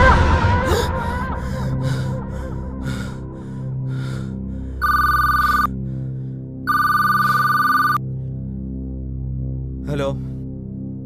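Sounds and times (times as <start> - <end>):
low drone of background score: 0.0 - 11.0
telephone ringing: 4.8 - 5.7, 6.7 - 8.0.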